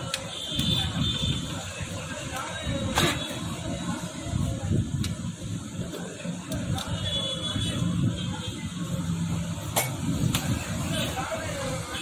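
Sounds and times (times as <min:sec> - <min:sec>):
indistinct talking: 0:00.0 - 0:12.0.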